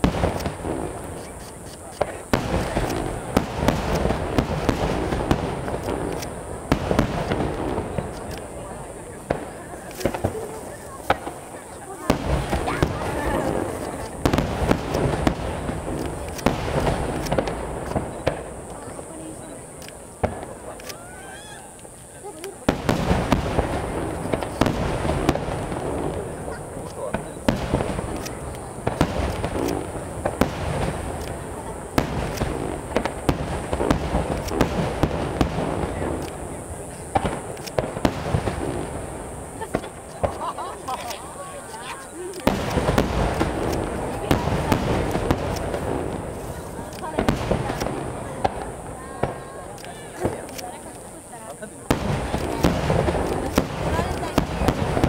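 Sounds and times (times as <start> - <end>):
firework shells bursting: 0.0 - 55.0.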